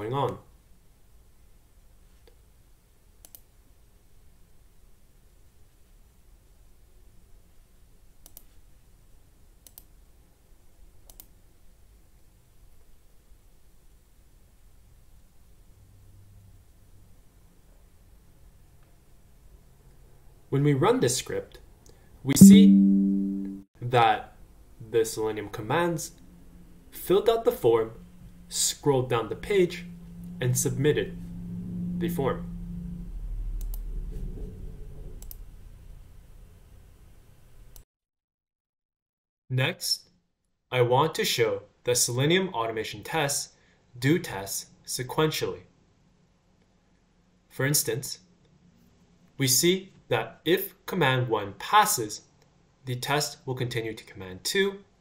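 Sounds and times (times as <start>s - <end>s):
low room hum: 0.2s - 37.8s
computer mouse clicks: 3.2s - 3.5s, 8.2s - 8.6s, 9.6s - 9.9s, 11.0s - 11.4s, 33.6s - 33.8s, 35.2s - 35.4s
faint low hum: 22.3s - 37.8s.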